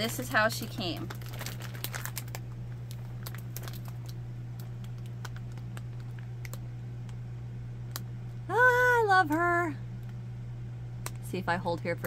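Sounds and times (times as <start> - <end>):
plastic bag crinkling: 0.0 - 6.6
low hum: 0.0 - 12.0.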